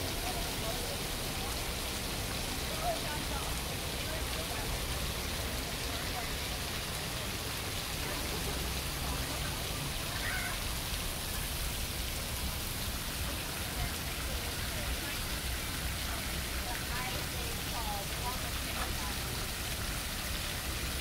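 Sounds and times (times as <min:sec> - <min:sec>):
water streams falling into pool: 0:00.0 - 0:21.0.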